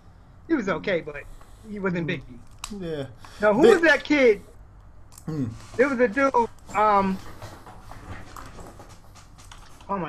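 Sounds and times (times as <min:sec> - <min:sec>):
faint room noise: 0:00.0 - 0:10.0
man saying um: 0:00.6 - 0:04.4, 0:05.3 - 0:07.2.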